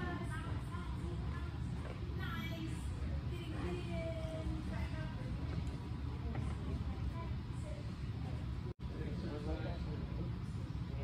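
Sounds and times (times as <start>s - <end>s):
low rumble of large hall: 0.0s - 11.0s.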